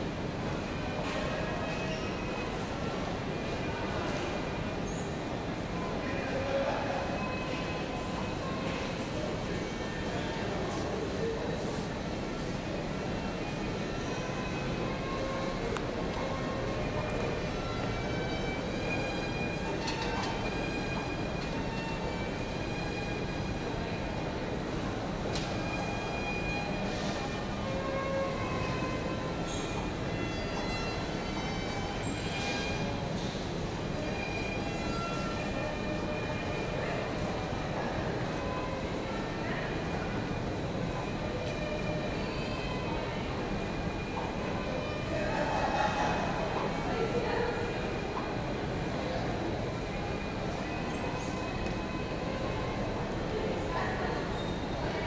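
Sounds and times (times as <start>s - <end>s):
train rumble: 0.0s - 55.0s
faint high whining tones: 0.4s - 45.7s, 46.4s - 55.0s.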